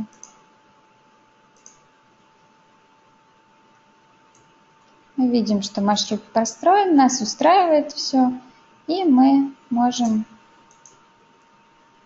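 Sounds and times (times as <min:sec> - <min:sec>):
computer mouse click: 0:00.0 - 0:00.4, 0:01.5 - 0:01.9, 0:04.3 - 0:04.6, 0:10.0 - 0:11.5.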